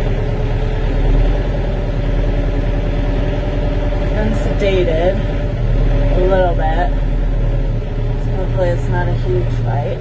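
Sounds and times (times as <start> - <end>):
tractor engine idling: 0.0 - 10.0.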